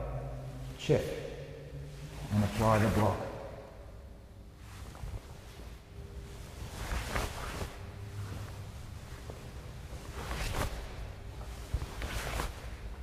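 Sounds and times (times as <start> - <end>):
low room rumble: 0.0 - 13.0
uniform fabric swishing: 4.5 - 13.0.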